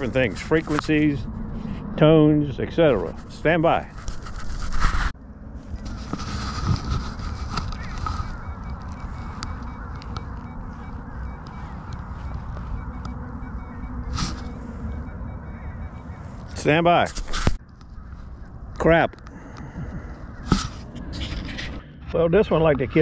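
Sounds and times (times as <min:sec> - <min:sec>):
steady background noise: 0:00.0 - 0:23.0
short knocks and scrapes: 0:02.9 - 0:05.2, 0:05.8 - 0:09.4
loud scuffing noise: 0:03.0 - 0:09.3, 0:14.0 - 0:14.8
metal detector tones: 0:05.6 - 0:17.6.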